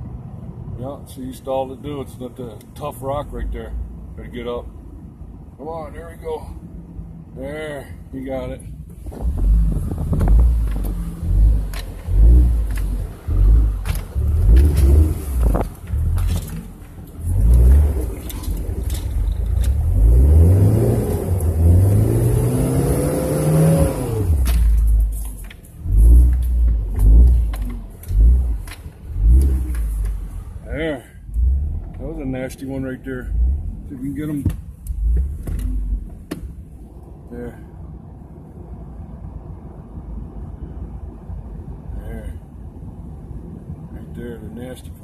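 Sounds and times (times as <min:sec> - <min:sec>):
truck engine revving: 0:09.2 - 0:25.2, 0:25.8 - 0:30.7
truck bumping over rocks: 0:11.7 - 0:20.0.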